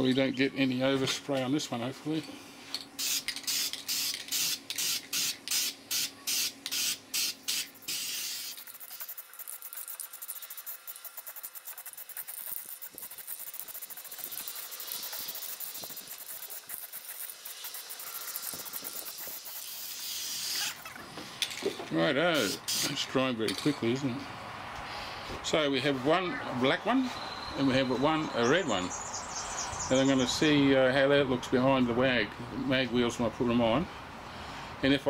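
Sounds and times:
aerosol spray paint hissing: 3.0s - 20.8s.

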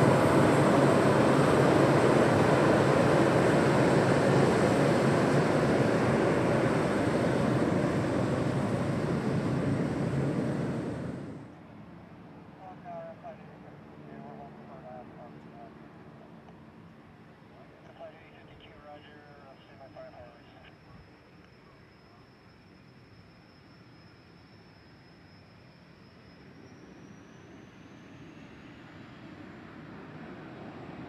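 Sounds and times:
distant jet engines whining: 0.0s - 31.0s.

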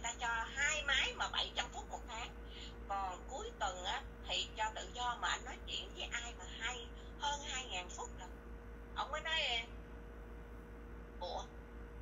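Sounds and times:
person talking: 0.0s - 8.3s.

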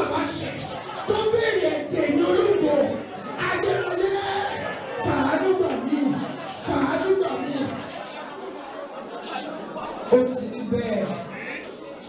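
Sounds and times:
murmur of many voices: 0.0s - 12.0s.

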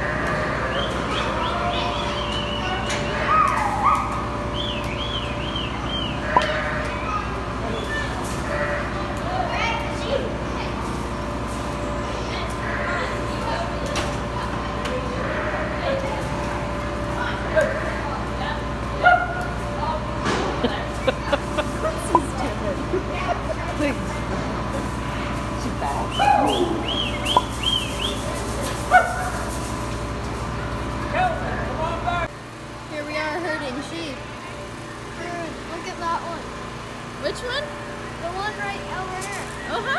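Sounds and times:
sheep bleating: 0.0s - 1.0s, 6.2s - 7.1s, 8.4s - 9.0s, 15.1s - 16.1s
ventilation fans humming: 0.0s - 39.9s.

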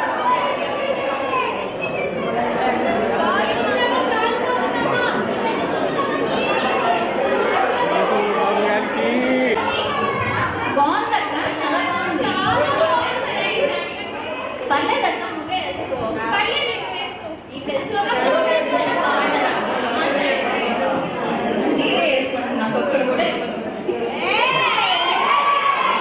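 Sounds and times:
crowd chatter: 0.0s - 26.0s
voice over microphone: 8.0s - 9.6s.

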